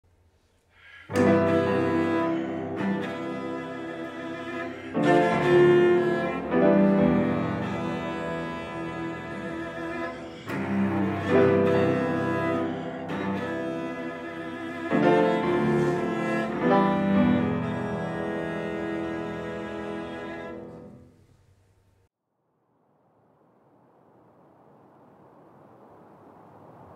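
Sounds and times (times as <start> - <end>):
cello and piano classical music: 1.1 - 21.1.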